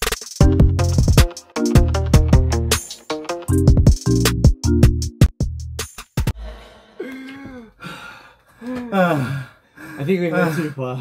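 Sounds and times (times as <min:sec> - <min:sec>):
sharp beat of music: 0:00.0 - 0:06.3
man sighing and gasping: 0:06.4 - 0:10.9.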